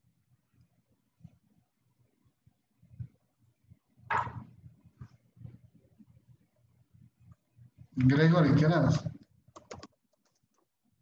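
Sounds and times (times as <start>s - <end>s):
typing on computer keyboard: 9.5s - 10.7s.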